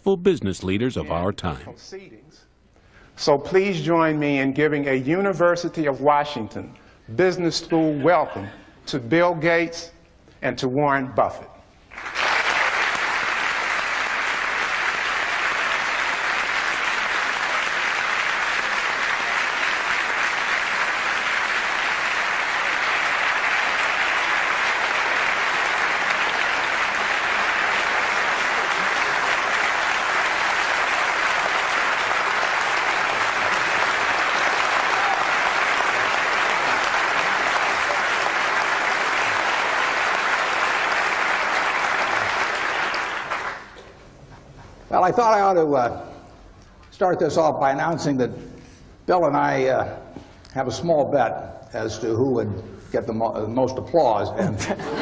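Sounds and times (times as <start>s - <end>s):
audience applauding: 11.9s - 43.9s.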